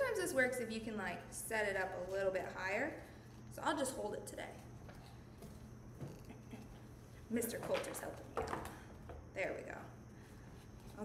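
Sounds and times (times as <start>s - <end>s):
faint handling sounds: 10.1s - 11.0s.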